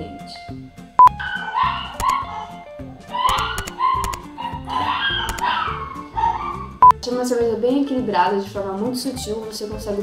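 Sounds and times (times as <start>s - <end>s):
background music: 0.0s - 10.0s
dog yelping: 1.0s - 6.9s.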